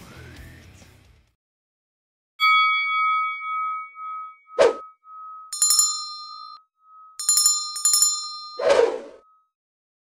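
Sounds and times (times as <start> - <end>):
bright bell dings: 2.4 - 9.4
steady high beep: 2.6 - 9.4.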